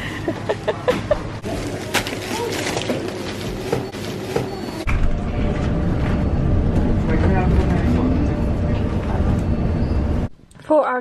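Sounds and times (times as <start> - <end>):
bus engine and road rumble: 4.9 - 10.3.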